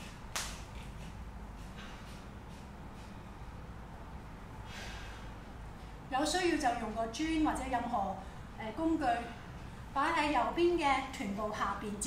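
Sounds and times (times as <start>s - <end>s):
short sharp breath: 4.6s - 5.4s.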